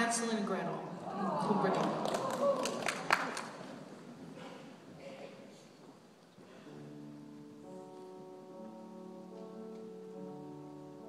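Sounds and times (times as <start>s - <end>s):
audience settling noise: 0.0s - 11.0s
audience clapping: 1.6s - 4.0s.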